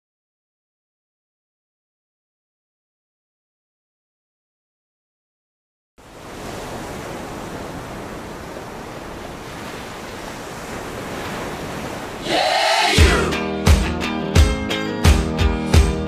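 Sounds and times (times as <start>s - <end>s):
steady rushing noise: 6.0s - 13.4s
music with guitar and beat: 13.0s - 16.0s.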